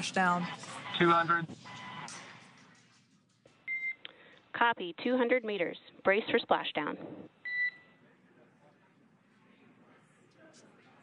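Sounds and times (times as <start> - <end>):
two-tone radio beep: 7.4 - 7.9.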